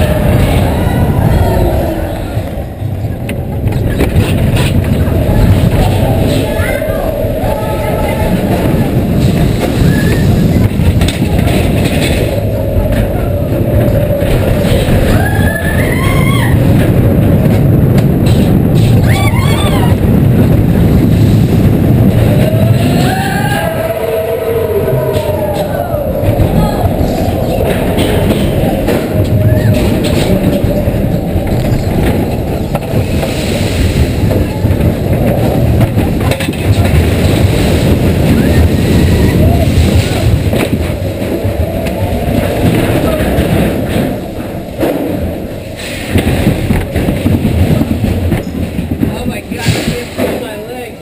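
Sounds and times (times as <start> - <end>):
roller coaster wheels rumbling: 0.0 - 51.0.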